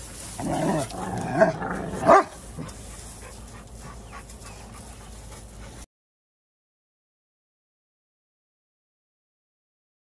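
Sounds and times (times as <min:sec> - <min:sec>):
dogs grumbling: 0:00.3 - 0:05.8.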